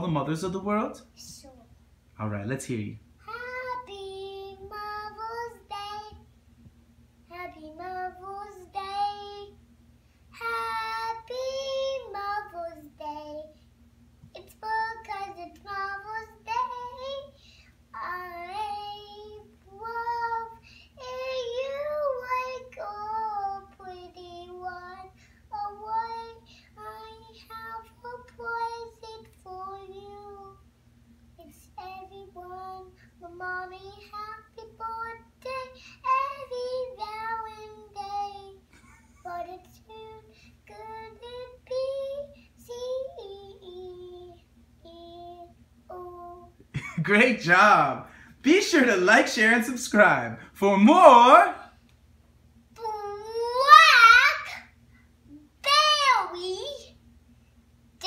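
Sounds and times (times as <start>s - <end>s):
young girl singing unaccompanied: 3.2s - 6.4s, 7.2s - 9.7s, 10.3s - 30.7s, 31.4s - 46.6s, 52.7s - 54.7s, 55.3s - 57.0s.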